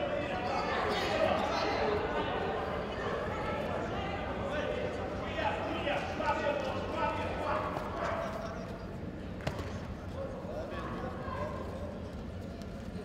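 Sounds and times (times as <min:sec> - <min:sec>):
people's voices in a hall: 0:00.0 - 0:13.0.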